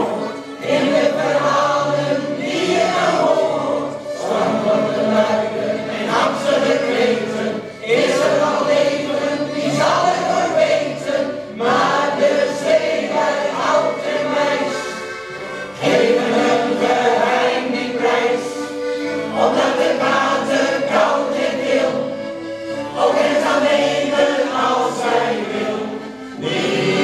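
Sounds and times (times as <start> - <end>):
accordions: 0.0 - 27.0
choir singing slow song: 0.0 - 27.0.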